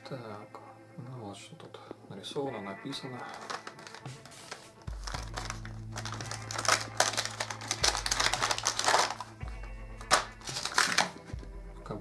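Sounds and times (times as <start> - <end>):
plastic packaging crinkling: 3.2 - 9.4, 10.0 - 11.2
cardboard box being opened: 3.3 - 9.2, 10.1 - 11.1.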